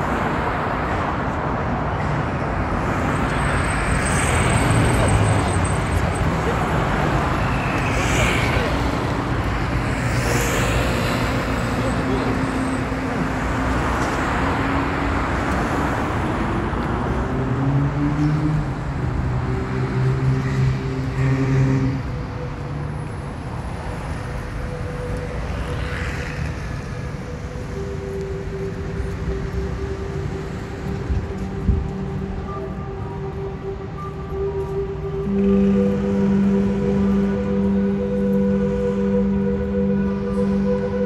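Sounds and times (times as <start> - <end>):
city road traffic: 0.0 - 41.0.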